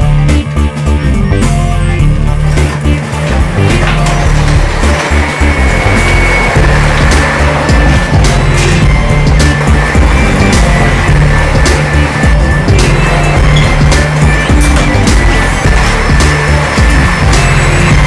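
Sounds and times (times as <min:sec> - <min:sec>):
chair casters rolling on floor: 0:00.0 - 0:18.0
rock music: 0:00.0 - 0:18.0.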